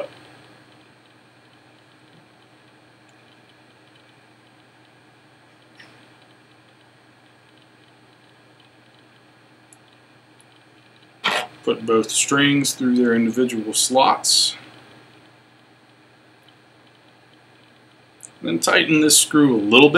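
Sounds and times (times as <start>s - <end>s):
faint steady hum: 0.0s - 19.9s.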